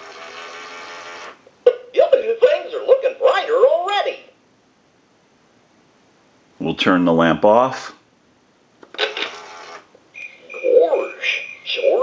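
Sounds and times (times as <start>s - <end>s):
lamp mechanism running: 0.0s - 1.4s.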